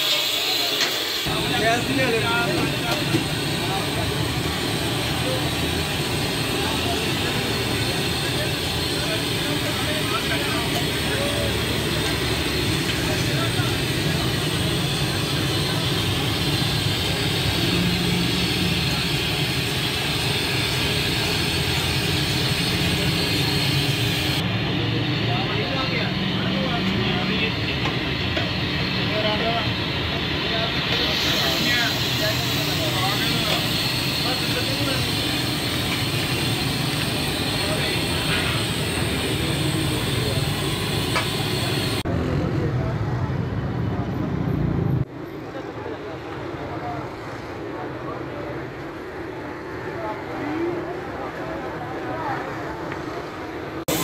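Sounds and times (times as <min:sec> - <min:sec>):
crowd chatter: 0:00.0 - 0:54.0
street traffic: 0:00.0 - 0:54.0.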